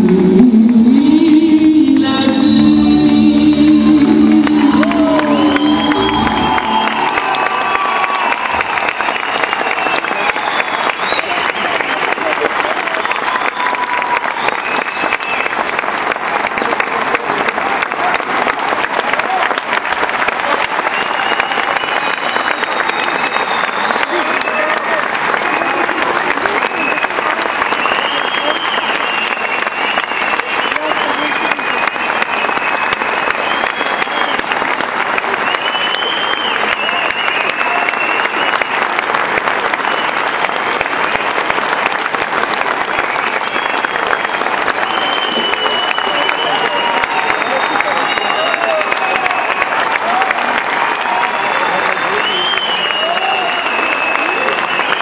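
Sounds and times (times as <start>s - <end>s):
audience applauding: 2.4s - 55.0s
high cheers: 4.0s - 55.0s.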